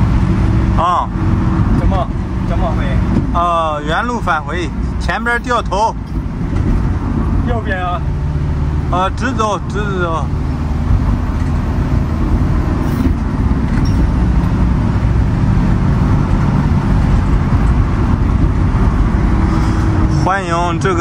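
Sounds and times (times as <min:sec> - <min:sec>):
tyre and road noise: 0:00.0 - 0:21.0
van engine drone: 0:00.0 - 0:21.0.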